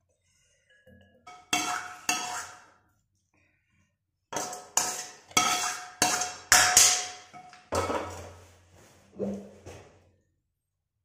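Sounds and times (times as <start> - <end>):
spatula scraping a wok: 1.3 - 2.8, 4.3 - 8.7.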